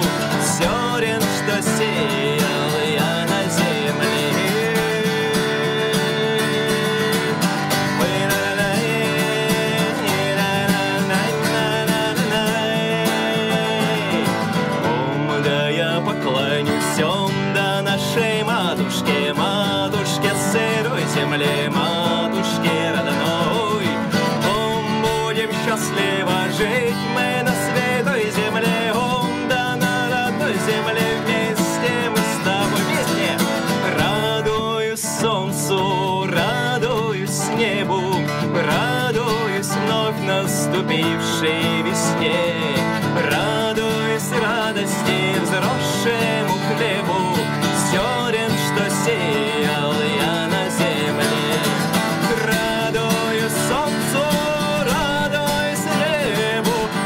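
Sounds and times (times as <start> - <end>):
man singing: 0.0 - 57.0
strummed acoustic guitar: 0.0 - 57.0.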